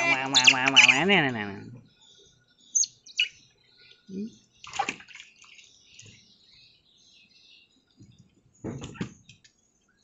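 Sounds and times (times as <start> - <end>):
otter chirping: 0.0 - 6.2
water splashing: 4.6 - 5.7.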